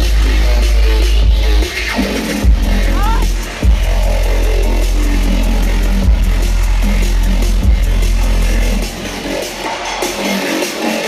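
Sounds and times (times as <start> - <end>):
dubstep over concert sound system: 0.0 - 11.0.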